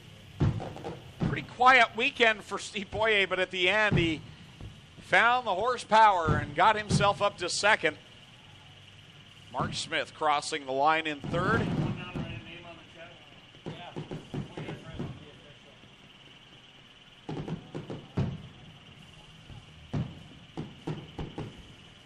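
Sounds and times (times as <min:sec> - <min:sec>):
faint distant voices: 0:11.2 - 0:21.9.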